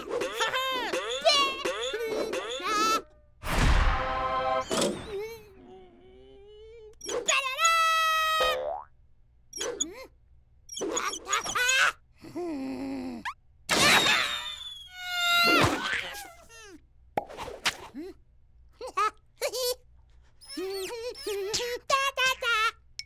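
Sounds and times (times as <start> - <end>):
squeaky cartoon chick noises: 0.0 - 3.2, 6.3 - 8.6, 9.5 - 10.1, 10.7 - 12.0, 13.3 - 16.2, 20.4 - 22.8.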